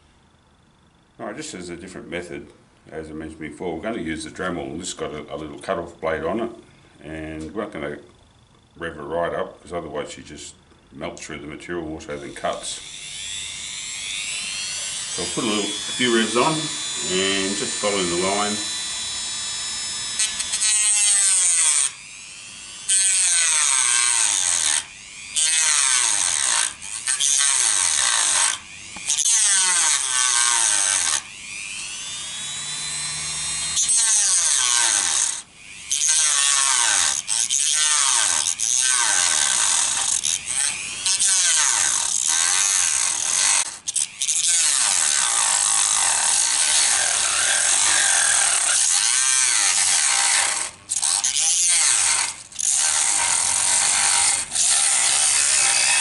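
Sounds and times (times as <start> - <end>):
rotary tool cutting plastic: 12.1 - 56.0.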